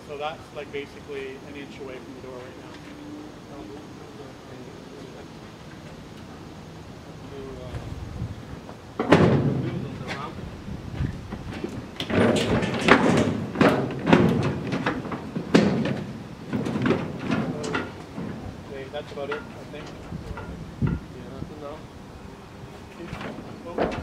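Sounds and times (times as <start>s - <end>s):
car body on dolly clunking: 8.6s - 21.1s, 22.8s - 24.0s
knocks and rattles on metal deck: 8.9s - 21.1s, 23.0s - 24.0s.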